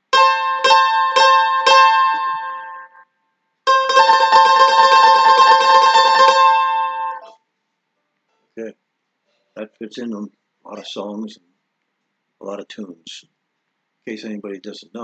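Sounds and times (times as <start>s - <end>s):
mandolin double stop: 0.1s - 2.8s.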